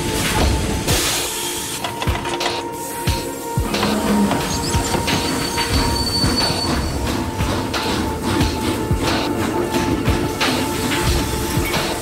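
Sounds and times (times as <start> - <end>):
steam hissing: 0.0 - 12.0.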